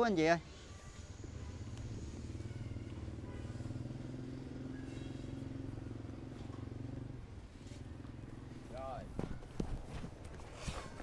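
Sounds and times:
motorcycle engine running: 1.1 - 9.7.

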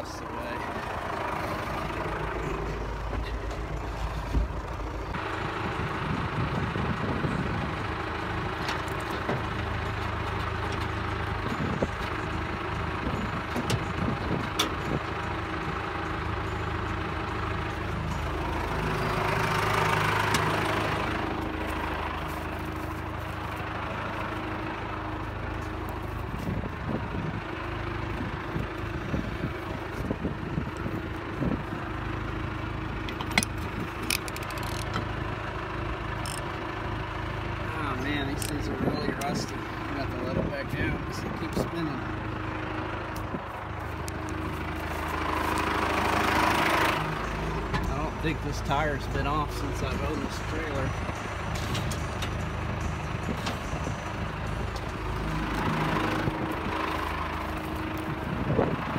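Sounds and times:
tractor engine idling: 0.0 - 58.9
metallic clicks and knocks: 33.1 - 35.1.

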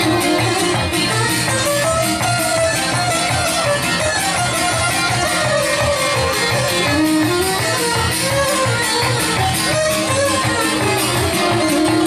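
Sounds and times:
plucked string instrument strumming: 0.0 - 12.0
violin melody: 0.0 - 12.0.

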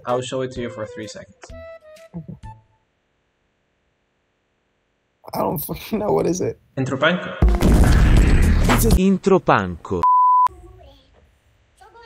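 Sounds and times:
censor bleep: 10.0 - 10.5.

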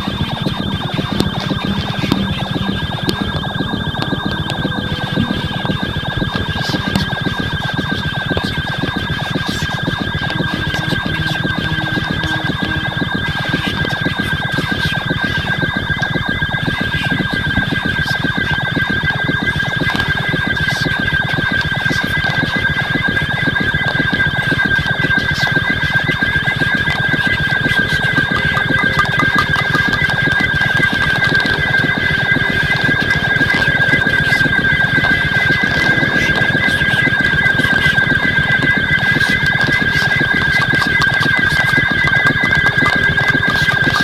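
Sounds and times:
warbling tone: 0.0 - 14.0, 27.0 - 44.0
fast-pulsing noisy texture: 0.0 - 44.0
loud steady high tone: 0.0 - 44.0.

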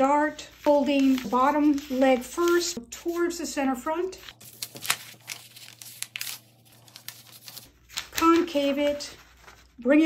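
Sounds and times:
paper rustling and crinkling: 0.4 - 3.2, 4.0 - 10.0.

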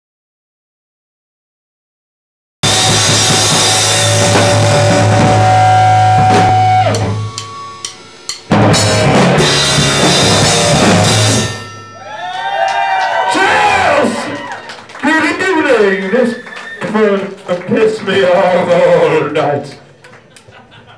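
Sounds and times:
live rock band playing loudly: 2.6 - 12.0.

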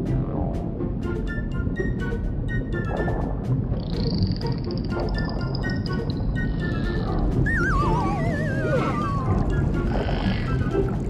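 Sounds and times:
background music: 0.0 - 11.0
cartoon dolphin whistles: 6.4 - 11.0.

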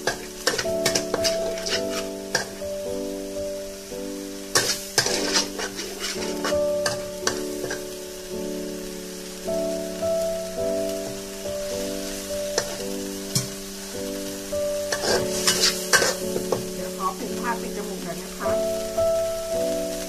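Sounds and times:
metal spatula scraping wok: 0.0 - 2.6, 4.4 - 7.9, 12.0 - 13.6, 14.8 - 17.5
background music with held notes: 0.0 - 20.0
paste sizzling in a wok: 0.0 - 20.0.

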